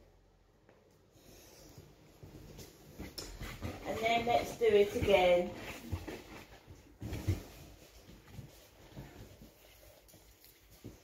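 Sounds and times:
shuffling footsteps: 1.8s - 11.0s.

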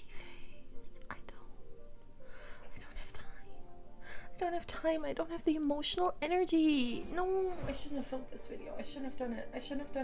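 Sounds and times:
faint background music: 0.0s - 10.0s
woman whispering breathily: 2.5s - 4.4s.

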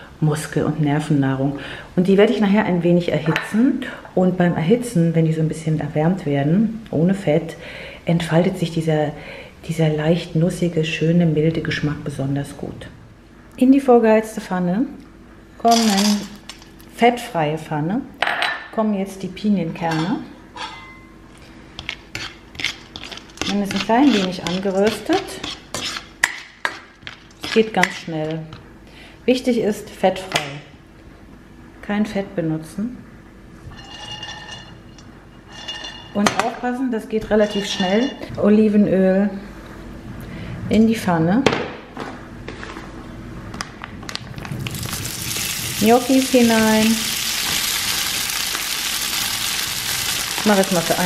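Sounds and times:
nuts clicking in a frying pan: 44.4s - 51.0s.

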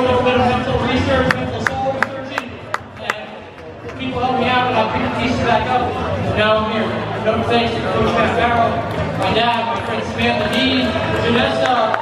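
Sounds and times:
crowd chatter: 0.0s - 12.0s
sharp hand claps: 1.3s - 4.1s.

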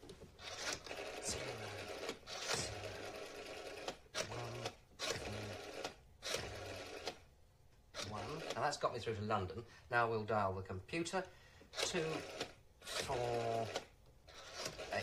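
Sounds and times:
rotary telephone dial whirring: 0.4s - 7.3s, 7.9s - 8.9s, 11.7s - 15.0s.

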